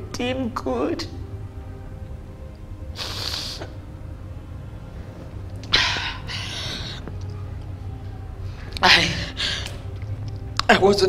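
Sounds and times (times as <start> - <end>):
low steady hum: 0.0 - 11.0
woman sniffing and crying: 2.9 - 3.8, 5.7 - 7.0.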